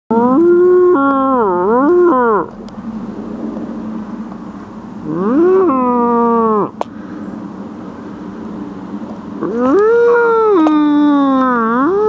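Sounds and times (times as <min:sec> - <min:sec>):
elk call tone: 0:00.1 - 0:02.5.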